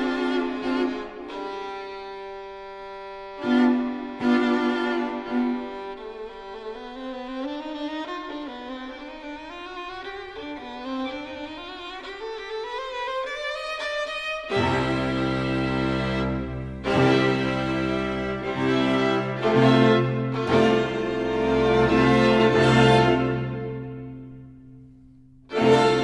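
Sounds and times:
string quartet playing slow music: 0.0 - 26.0.

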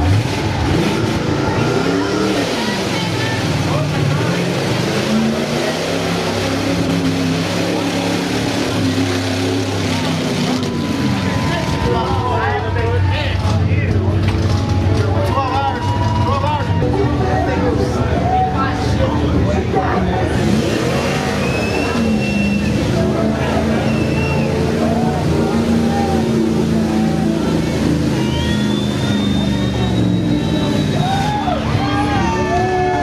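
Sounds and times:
car engine revving: 0.0 - 33.0.

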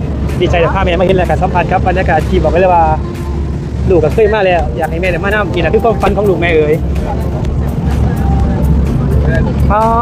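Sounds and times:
boat engine low rumble: 0.0 - 10.0
faint passenger chatter: 0.0 - 10.0.

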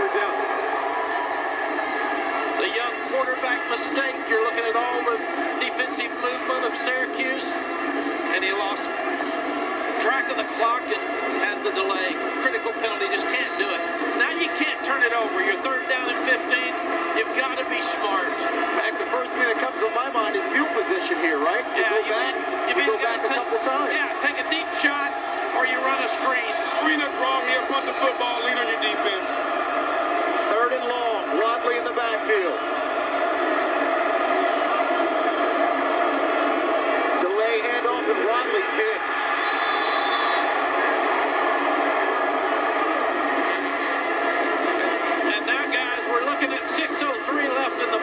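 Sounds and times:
sports commentary through tv speaker: 0.0 - 48.0.

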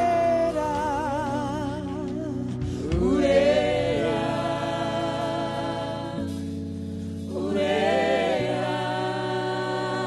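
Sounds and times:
group of singers: 0.0 - 10.0
sustained backing chords: 0.0 - 10.0.

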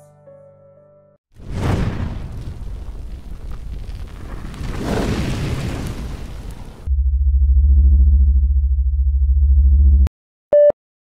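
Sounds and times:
synthesizer bass drone: 6.9 - 10.1.

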